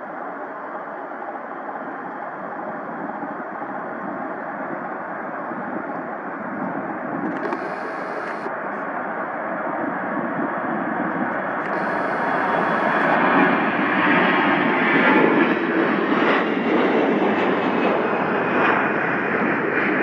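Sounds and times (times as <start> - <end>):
faint engine whine: 0.0 - 19.3
jet engines running: 0.2 - 20.0.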